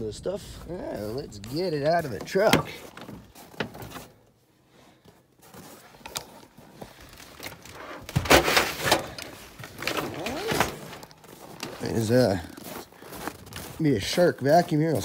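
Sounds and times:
scraping and bumping of items: 1.1 - 4.4, 5.0 - 12.6
handling clicks and knocks: 1.4 - 4.2, 6.0 - 11.9.

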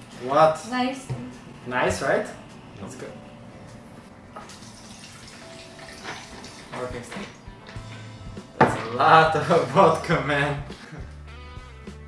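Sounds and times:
liquid pouring into pitcher: 4.4 - 7.4.

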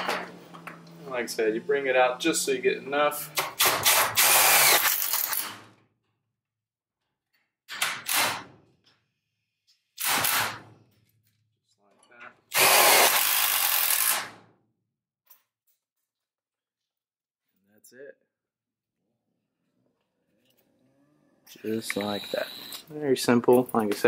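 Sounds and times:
impact driver driving screws: 3.4 - 5.7, 12.5 - 14.4.

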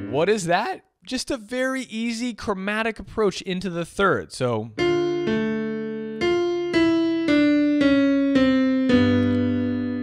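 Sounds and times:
slow bebop piano: 4.8 - 10.0.

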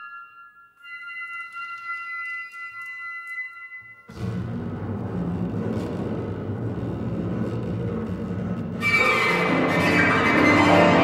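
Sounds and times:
bowed double bass: 4.1 - 11.0
chamber ensemble low sustained texture: 4.1 - 11.0.

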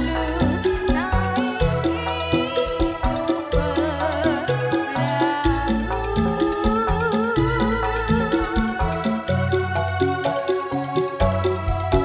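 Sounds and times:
live band instrumental music: 0.0 - 12.0.

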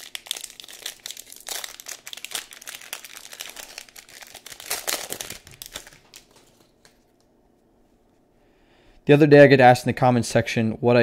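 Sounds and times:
plastic wrapper crinkling: 0.0 - 7.0.

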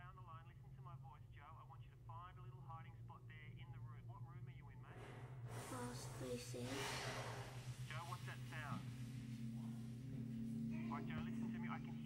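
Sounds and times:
muffled voice: 0.0 - 7.0, 10.7 - 12.0
steady low hum: 0.0 - 12.0
steady low tone: 4.2 - 12.0
breathy noises: 4.8 - 11.6.

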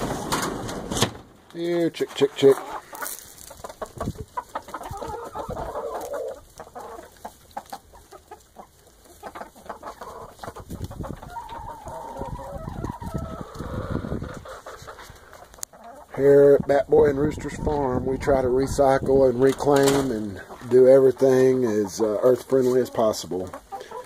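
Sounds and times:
chickens clucking and calling: 0.0 - 1.0, 1.6 - 24.0
long drawn-out chicken calls: 2.5 - 16.1, 22.8 - 24.0.

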